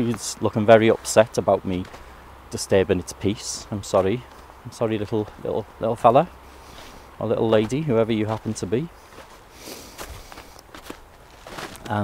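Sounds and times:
footsteps on frosty path: 0:00.0 - 0:12.0.

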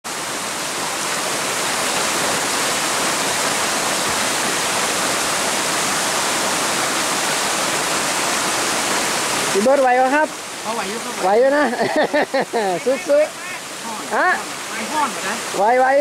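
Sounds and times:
stream running over stones: 0:00.0 - 0:16.0.

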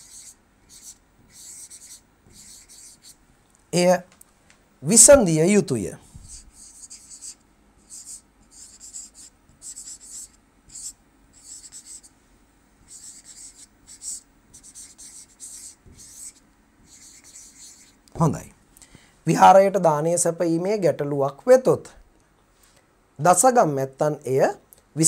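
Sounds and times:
scratchy pen strokes: 0:00.0 - 0:03.2, 0:06.1 - 0:12.1, 0:12.8 - 0:18.0.

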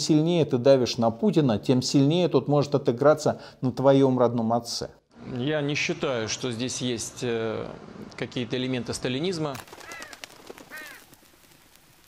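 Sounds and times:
faint hiss: 0:05.2 - 0:12.0
hoarse bird calls: 0:09.7 - 0:11.0.

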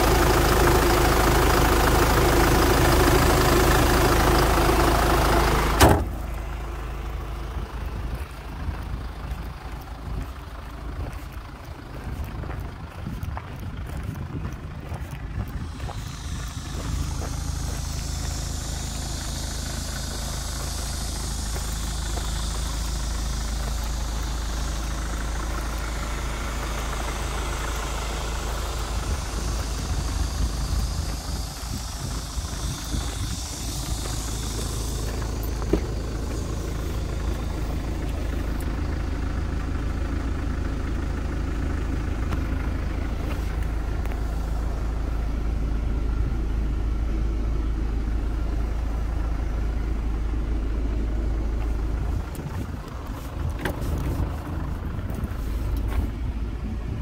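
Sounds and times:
car engine idling: 0:00.0 - 0:57.0.

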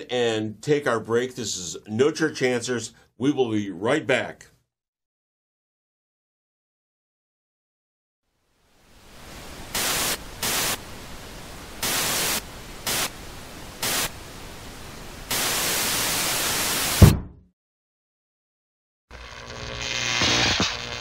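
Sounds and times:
television static hiss: 0:08.5 - 0:17.0, 0:19.2 - 0:21.0
low thump: 0:17.0 - 0:17.5.

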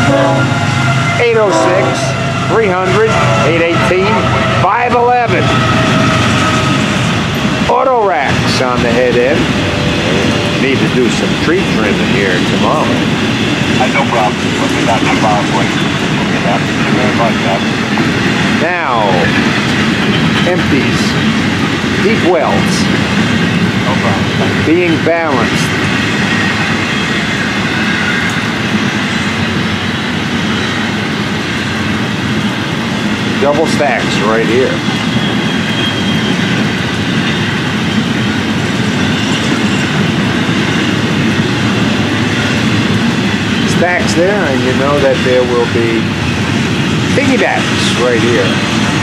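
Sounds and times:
freight train wheels rumbling on rails: 0:00.0 - 0:49.0.

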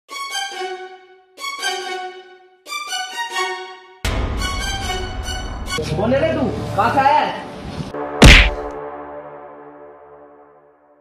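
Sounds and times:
whack with deep thump: 0:08.2 - 0:08.8.

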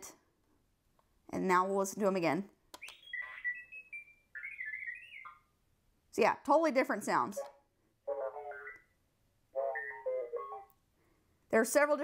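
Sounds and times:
toy robot beeps and whistles: 0:02.8 - 0:05.4, 0:09.6 - 0:10.7.

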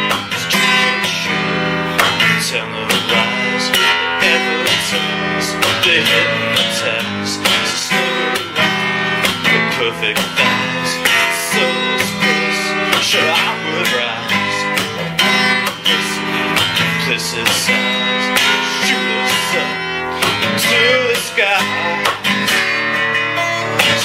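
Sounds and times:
acoustic guitar strumming: 0:00.0 - 0:24.0.

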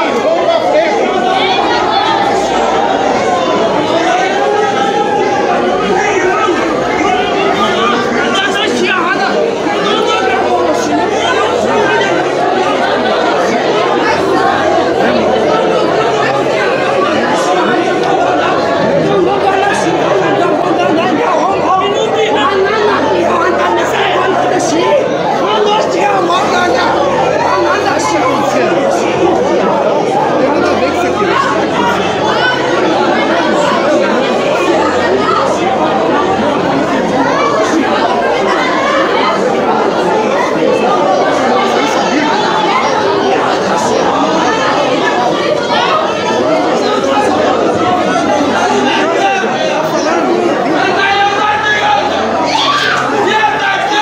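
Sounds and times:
crowd talking in echoing hall: 0:00.0 - 0:54.0.

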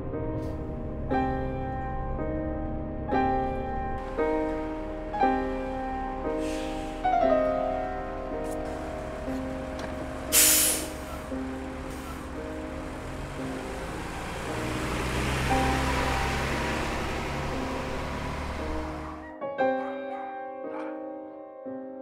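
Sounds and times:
bus engine running: 0:00.0 - 0:19.3
soft piano music: 0:00.0 - 0:22.0
pneumatic hiss: 0:10.3 - 0:11.1.

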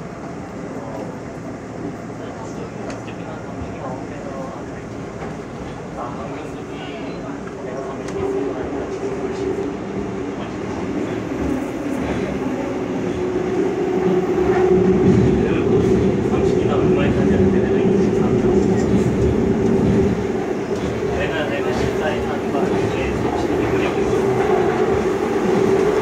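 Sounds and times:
subway train running rumble: 0:00.0 - 0:26.0.

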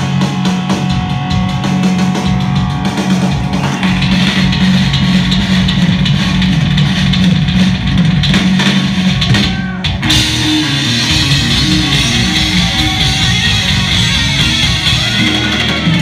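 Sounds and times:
bass guitar: 0:00.0 - 0:16.0
drum kit with cymbals: 0:00.0 - 0:16.0
electric guitar: 0:00.0 - 0:16.0.

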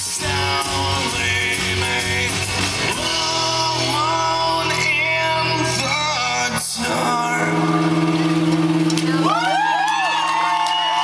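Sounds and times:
audience whooping and cheering: 0:08.8 - 0:11.0.

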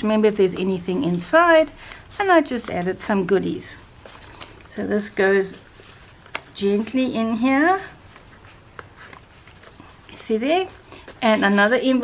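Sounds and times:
paper card sliding rustle: 0:03.9 - 0:12.0.

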